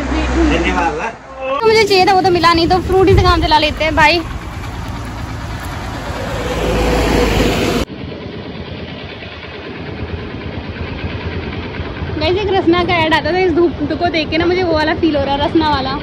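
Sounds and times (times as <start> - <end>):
motor scooter engine running: 1.7 - 16.0.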